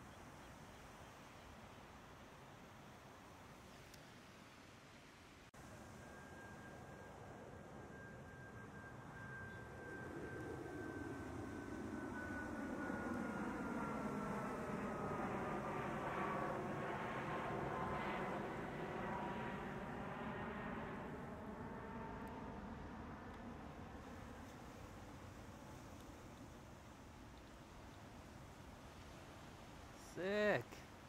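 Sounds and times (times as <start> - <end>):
aircraft engine rushing: 5.6 - 28.3.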